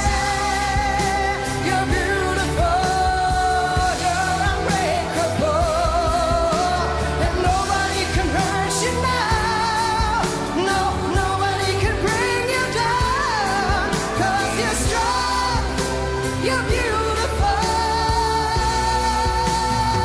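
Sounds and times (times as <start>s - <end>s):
pop backing accompaniment: 0.0s - 20.0s
singer belting pop song: 0.0s - 20.0s.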